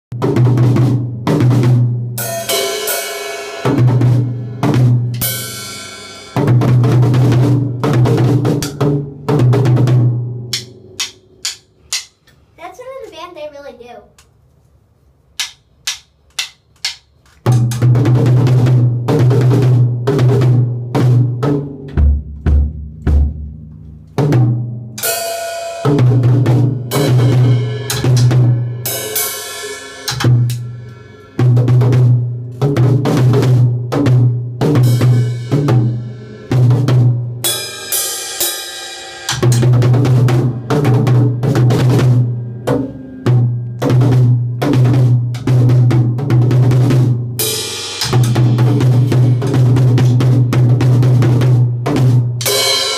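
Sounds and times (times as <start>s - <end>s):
drum kit hits: 0.1s - 12.1s, 24.2s - 52.9s
cymbal crashing: 2.2s - 6.4s, 25.0s - 31.6s, 37.4s - 44.4s.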